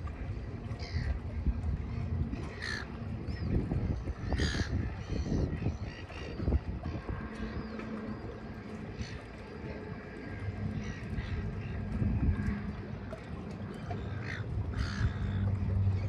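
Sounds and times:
wind rumble on microphone: 0.0 - 16.0.

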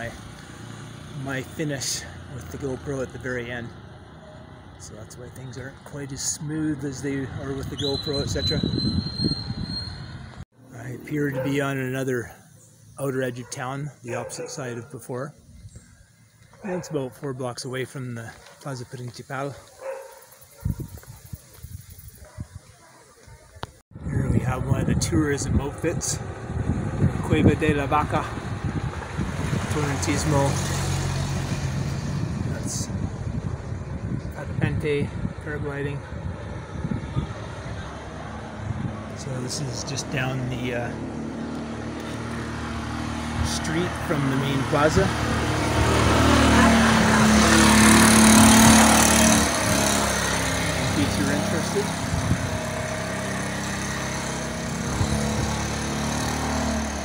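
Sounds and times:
vehicle engine passing: 0.0 - 14.8, 24.1 - 57.0.

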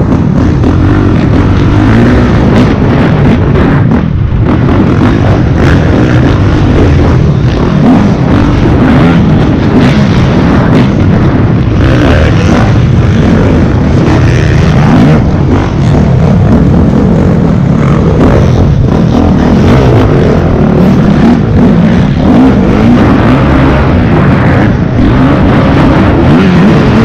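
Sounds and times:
dirt bike engine revving: 0.0 - 27.0.

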